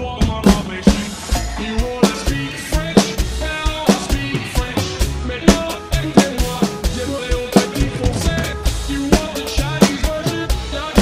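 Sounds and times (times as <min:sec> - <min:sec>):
drum kit played hard: 0:00.0 - 0:11.0
electronic backing track melody: 0:00.0 - 0:11.0.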